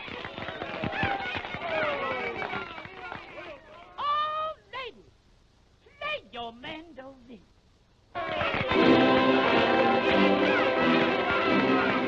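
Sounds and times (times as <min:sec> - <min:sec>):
high held cry: 0:08.2 - 0:12.0.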